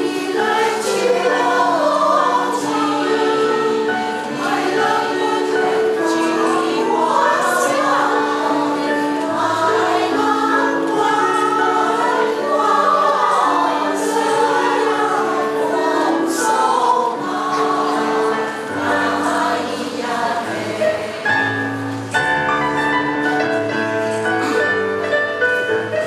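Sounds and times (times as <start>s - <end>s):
women's choir singing harmony: 0.0s - 22.5s.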